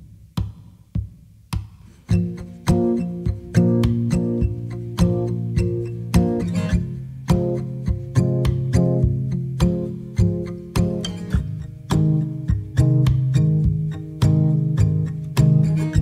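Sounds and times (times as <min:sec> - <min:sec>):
acoustic guitar playing: 0:01.7 - 0:16.0.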